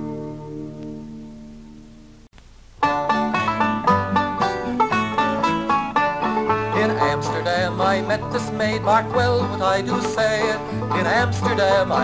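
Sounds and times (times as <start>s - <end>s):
picked banjo notes: 0.0s - 2.1s, 2.8s - 12.0s
acoustic guitar bass notes: 0.0s - 12.0s.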